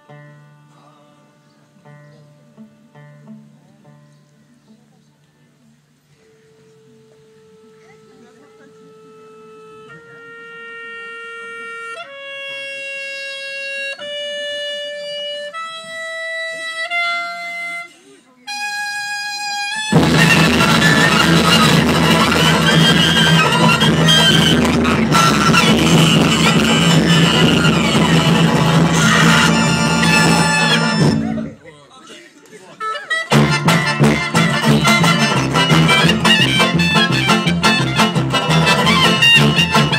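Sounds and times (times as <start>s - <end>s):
guitar: 0.0s - 17.8s, 18.5s - 31.7s, 32.9s - 39.9s
accordion: 0.0s - 31.7s, 32.5s - 39.9s
acoustic band playing: 0.0s - 31.7s, 32.5s - 39.9s
reed instrument slow held notes: 0.0s - 31.7s, 33.0s - 39.9s
double bass: 1.4s - 7.8s, 19.8s - 31.6s, 33.3s - 39.9s.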